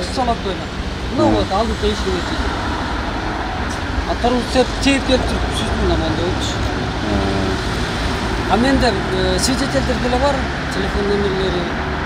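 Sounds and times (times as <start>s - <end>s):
people talking: 0.0s - 2.5s, 4.1s - 7.6s, 8.5s - 11.8s
street traffic rumble: 0.0s - 12.0s.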